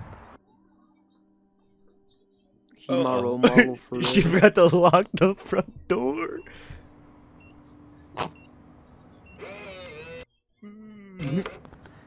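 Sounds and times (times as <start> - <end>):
lock motor whirring: 9.4 - 10.3.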